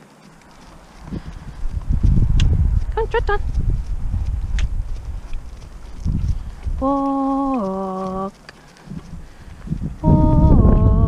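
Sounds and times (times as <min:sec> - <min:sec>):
wind rumble on microphone: 0:00.4 - 0:11.0
person singing voice command: 0:10.0 - 0:11.0.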